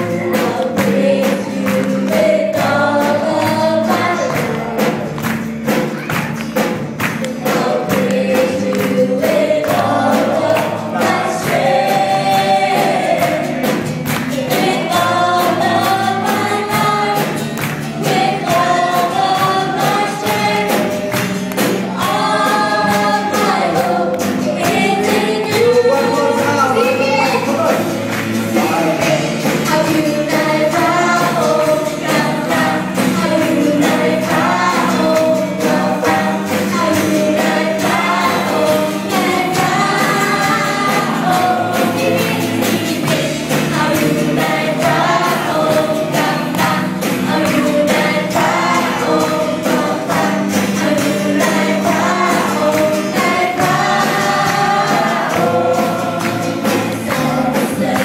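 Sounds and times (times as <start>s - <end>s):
keyboard-led band playing: 0.0s - 58.0s
percussion beat: 0.0s - 58.0s
roomful of voices singing: 0.0s - 58.0s.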